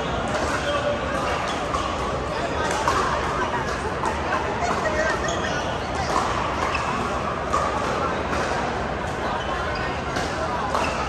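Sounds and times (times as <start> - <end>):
paddles hitting balls: 0.0 - 5.2, 5.8 - 9.2
chatter of many people: 0.0 - 11.0.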